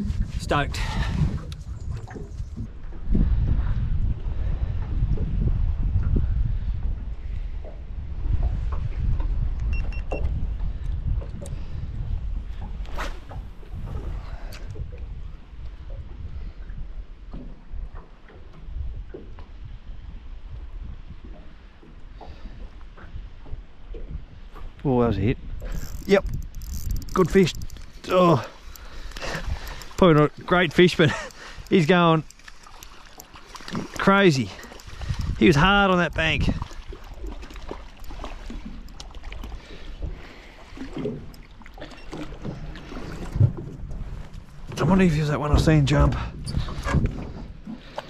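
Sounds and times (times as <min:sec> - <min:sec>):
water lapping at metal boat: 0:00.0 - 0:48.0
wind buffeting microphone: 0:00.0 - 0:48.0
sharp clicks: 0:25.6 - 0:33.7.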